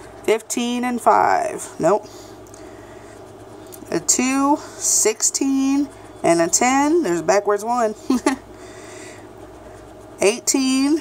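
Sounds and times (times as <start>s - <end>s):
low background hum: 0.0s - 11.0s
scratching lottery ticket coating: 0.0s - 11.0s.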